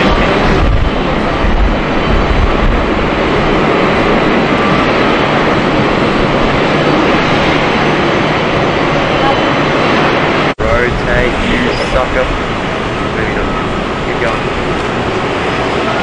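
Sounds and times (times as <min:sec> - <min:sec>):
jet engines running: 0:00.0 - 0:16.0.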